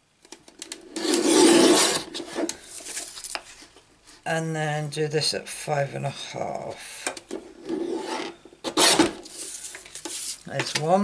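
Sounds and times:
paper rustling: 9.2 - 10.6.

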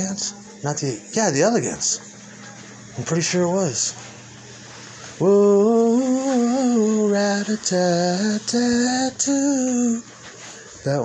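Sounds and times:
man singing unaccompanied: 0.0 - 2.1, 5.1 - 10.2.

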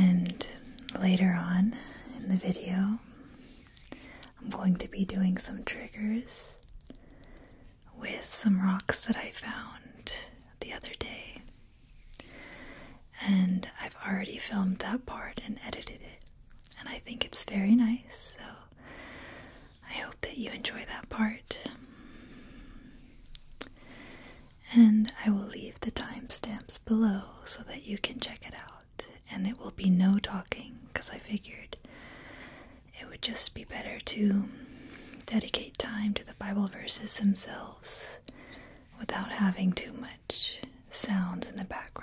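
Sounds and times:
woman speaking softly: 0.0 - 3.0.

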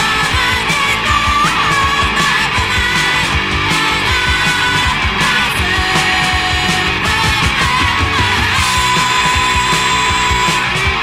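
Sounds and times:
punk rock guitars and drums: 0.0 - 11.0.

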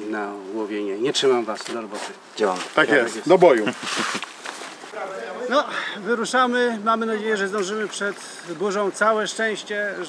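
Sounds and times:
faint outdoor background hiss: 0.0 - 10.0.

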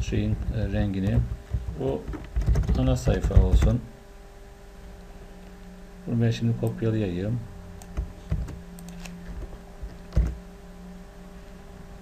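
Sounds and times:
computer keyboard keys clicking: 1.0 - 3.7, 10.1 - 10.4.

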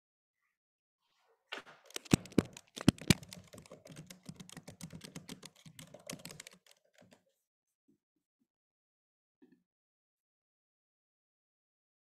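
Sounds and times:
computer keyboard typing: 1.9 - 7.2.

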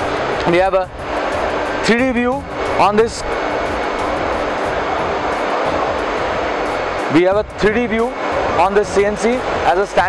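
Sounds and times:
busy exhibition hall din: 0.0 - 10.0
faint steady hum: 0.0 - 10.0.

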